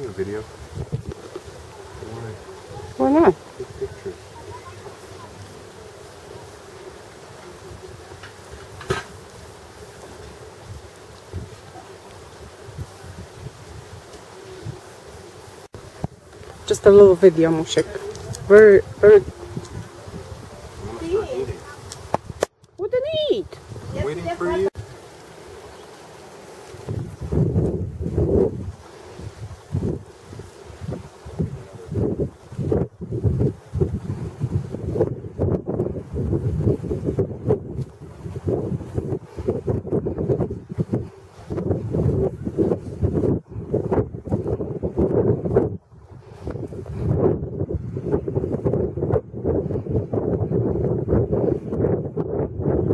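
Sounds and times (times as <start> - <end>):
wind buffeting microphone: 0.0 - 52.9.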